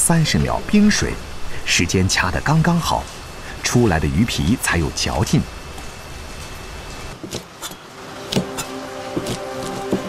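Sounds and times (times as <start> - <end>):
soft background music: 7.8 - 10.0.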